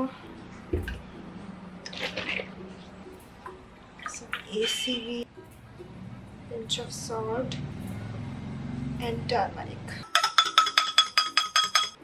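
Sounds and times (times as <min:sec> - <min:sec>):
spoon clinking in glass: 0:10.0 - 0:12.0.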